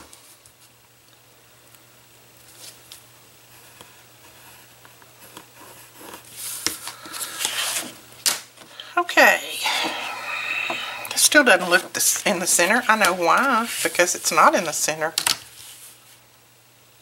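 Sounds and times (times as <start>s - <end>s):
pencil drawing along ruler: 9.6s - 14.6s
paper rustling and crackling: 11.6s - 16.2s.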